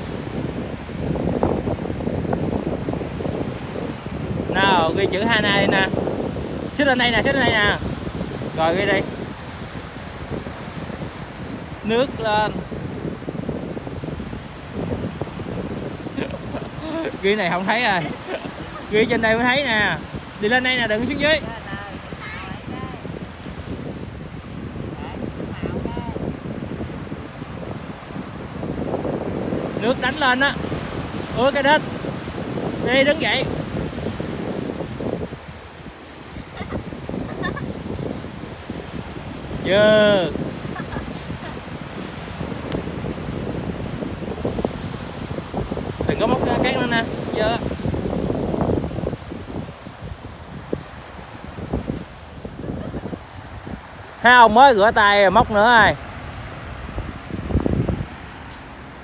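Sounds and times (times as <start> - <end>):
small waves breaking on sand: 0.0 - 59.0
wind buffeting microphone: 0.0 - 59.0.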